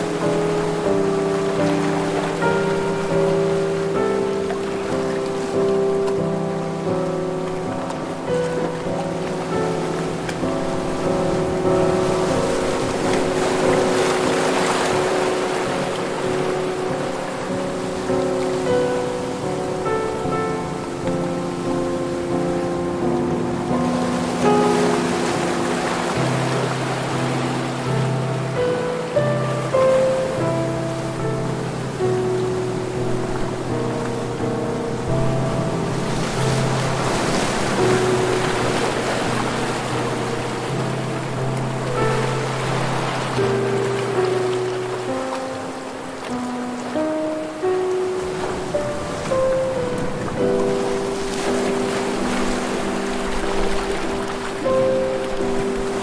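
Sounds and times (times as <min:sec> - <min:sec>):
ocean waves washing onto beach: 0:00.0 - 0:56.0
soft slow instrumental music: 0:00.0 - 0:56.0.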